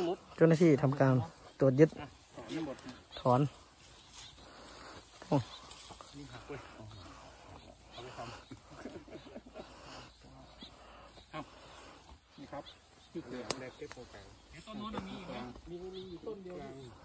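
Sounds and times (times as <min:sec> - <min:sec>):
men talking: 0:00.0 - 0:17.0.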